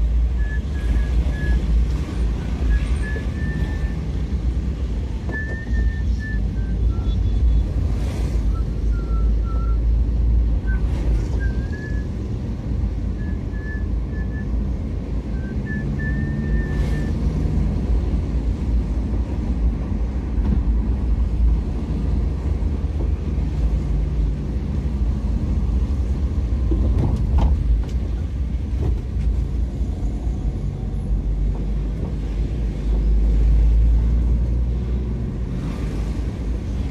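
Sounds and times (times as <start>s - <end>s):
vehicle engine and tyre rumble: 0.0s - 36.9s.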